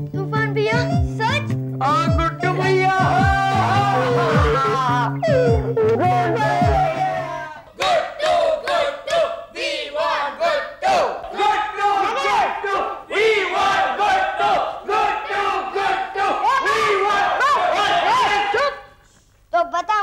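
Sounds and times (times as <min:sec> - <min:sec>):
people shouting and cheering: 0:02.1 - 0:18.9.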